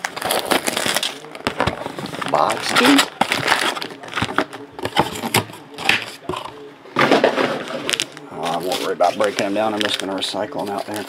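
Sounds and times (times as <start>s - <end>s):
cardboard tearing: 0.0s - 1.3s, 2.1s - 4.4s
cardboard crackling and snapping: 0.0s - 4.5s.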